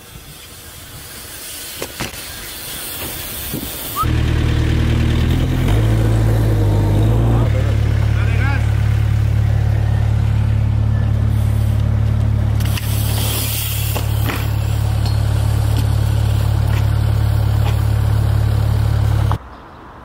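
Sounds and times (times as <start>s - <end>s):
construction machine engine running: 4.0s - 19.4s.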